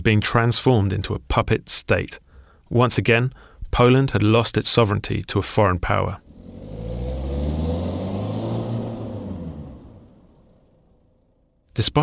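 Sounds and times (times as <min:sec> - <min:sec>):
car driving past: 0:06.2 - 0:11.6.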